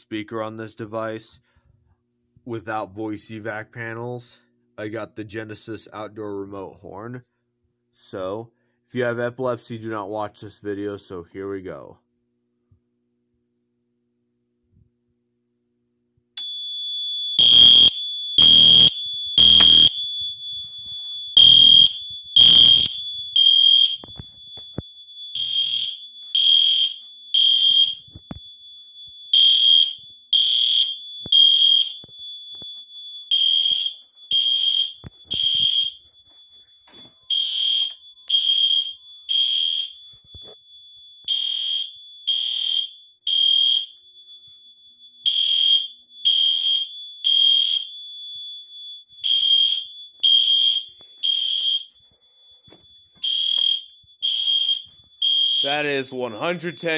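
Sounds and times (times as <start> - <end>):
high-pitched fire alarm beeps: 16.4 - 56.9.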